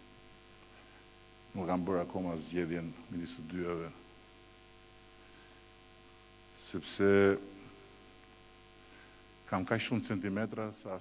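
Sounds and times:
electrical mains hum: 0.0 - 11.0
man speaking: 1.5 - 4.0, 6.6 - 7.8, 9.5 - 11.0.

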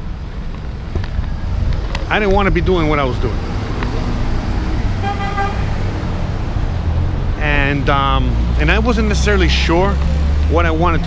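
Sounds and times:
street traffic rumble: 0.0 - 11.0
vehicle horn toot: 5.0 - 5.7.

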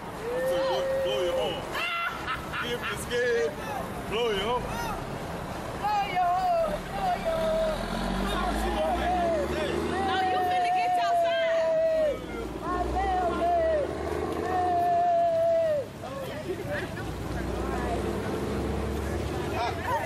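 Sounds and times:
group talking and calling out: 0.0 - 20.0.

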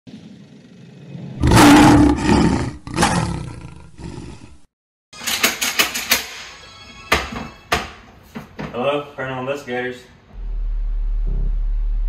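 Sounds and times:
loud roar: 1.3 - 4.6.

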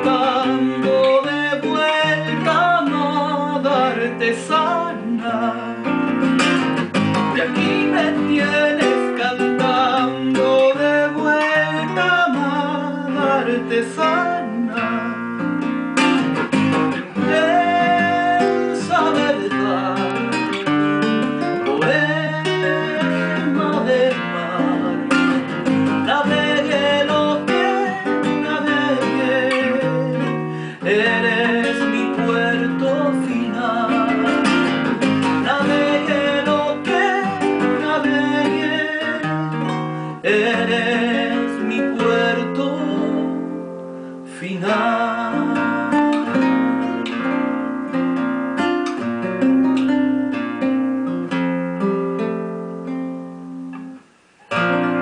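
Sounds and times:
man singing: 0.0 - 48.0
classical guitar strummed and plucked: 0.0 - 55.0.

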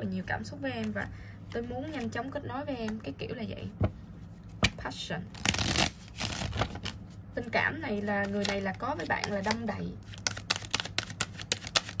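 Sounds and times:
cards being shuffled: 5.4 - 7.0, 8.2 - 12.0.

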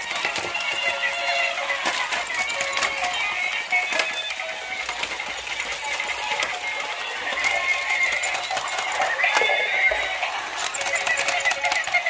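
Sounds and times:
thin electronic toy music: 0.0 - 12.0.

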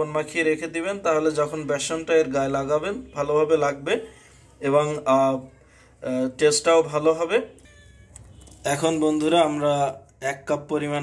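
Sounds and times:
man speaking: 0.0 - 7.6, 8.6 - 11.0
faint thin high tones: 7.6 - 9.0.

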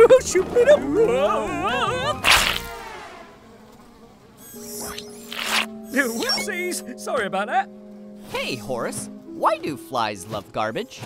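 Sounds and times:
fly buzzing: 2.1 - 6.7
cartoon whoosh: 2.2 - 3.0.

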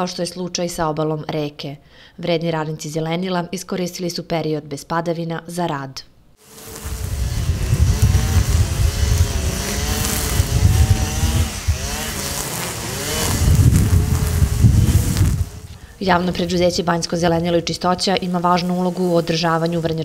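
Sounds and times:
string trimmer engine cutting grass: 6.4 - 20.0.

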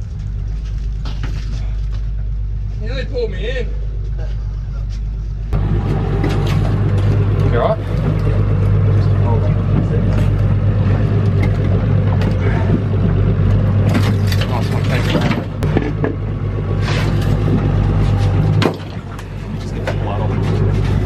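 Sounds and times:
outboard motor idling: 5.6 - 21.0
knocks and clatter on boat deck: 13.8 - 16.2.

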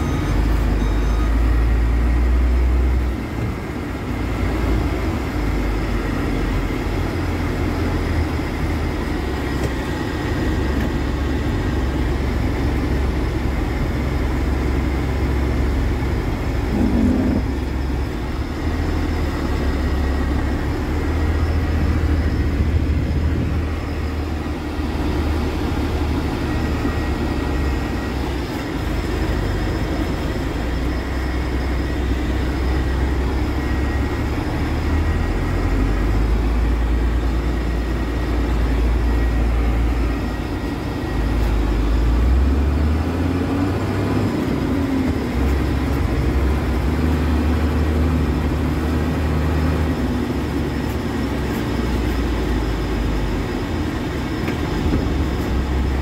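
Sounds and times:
road noise: 0.0 - 56.0
truck engine rumbling: 0.0 - 56.0.

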